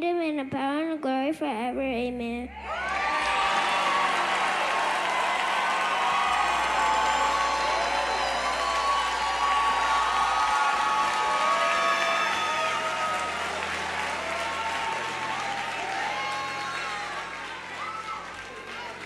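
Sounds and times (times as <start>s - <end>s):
cheers and shouts: 2.5s - 19.0s
crowd applauding: 2.6s - 19.0s.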